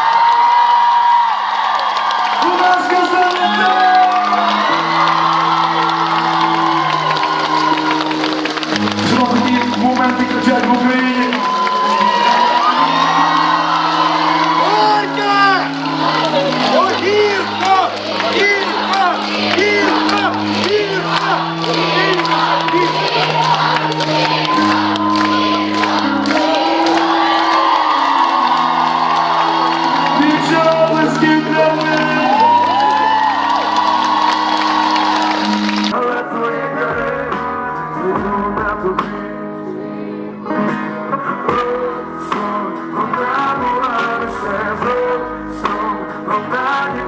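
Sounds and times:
audience cheering and whooping: 0:00.0 - 0:36.0
held keyboard chords: 0:02.4 - 0:47.0.

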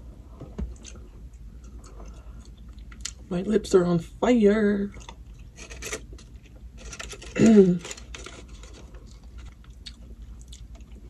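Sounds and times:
person chewing food: 0:00.7 - 0:03.2, 0:04.9 - 0:11.0.

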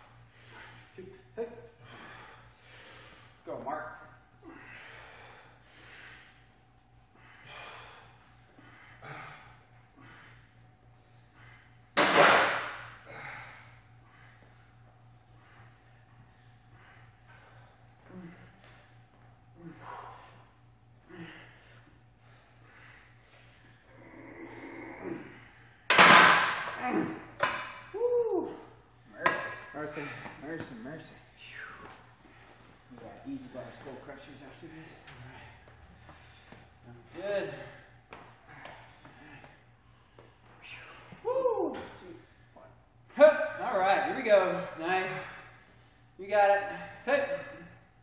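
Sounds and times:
man breathing forcefully: 0:00.0 - 0:01.0, 0:01.7 - 0:03.4, 0:04.3 - 0:24.0, 0:37.6 - 0:41.2
faint steady hum: 0:00.0 - 0:48.0.

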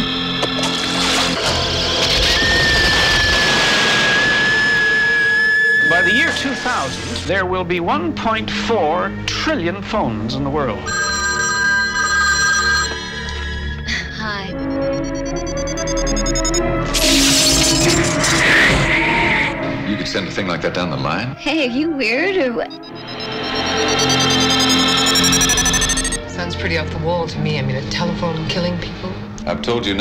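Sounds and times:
telephone ringing: 0:10.8 - 0:16.7, 0:22.7 - 0:26.2
synthesizer music: 0:10.9 - 0:18.2, 0:22.3 - 0:26.4.

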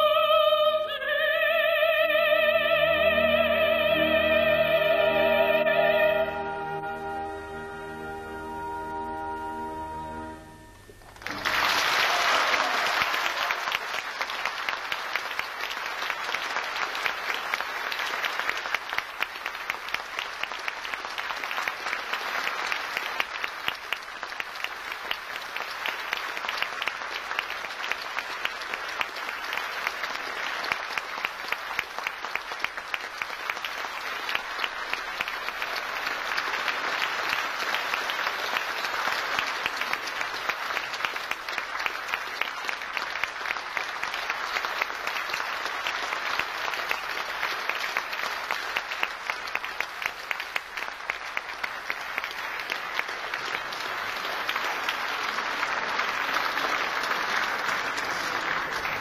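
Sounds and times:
audience applauding: 0:01.4 - 0:59.0.

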